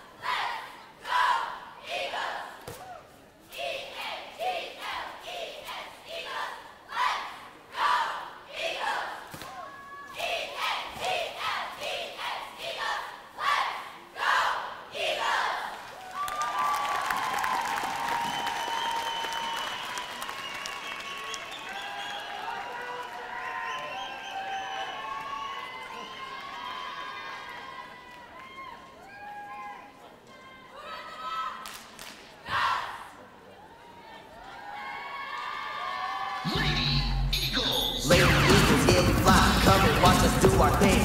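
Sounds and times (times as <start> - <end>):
cheerleaders shouting in unison: 0.0 - 15.8
applause: 15.8 - 26.9.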